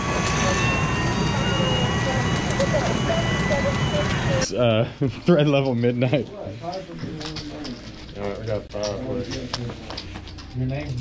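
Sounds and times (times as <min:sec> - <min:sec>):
indistinct background voices: 0:00.0 - 0:05.2.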